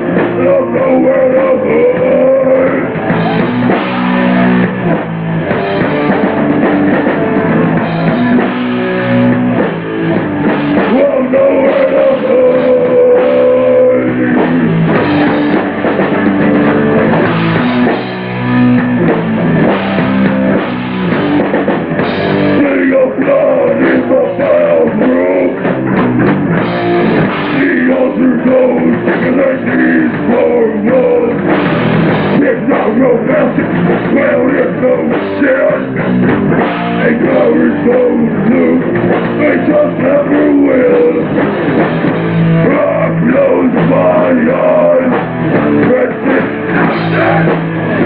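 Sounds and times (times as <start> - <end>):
distorted electric guitars: 0.0 - 48.0
drum kit: 0.0 - 48.0.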